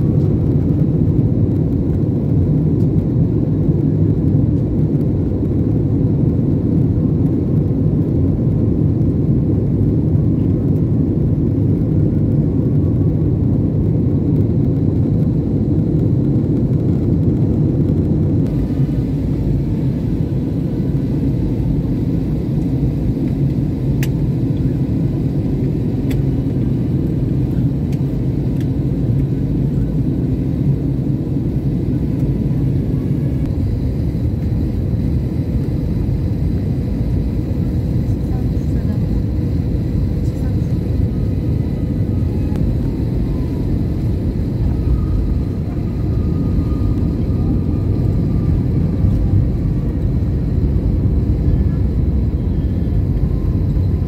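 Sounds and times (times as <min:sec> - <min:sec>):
jet engine and airflow rumble: 0:00.0 - 0:54.0.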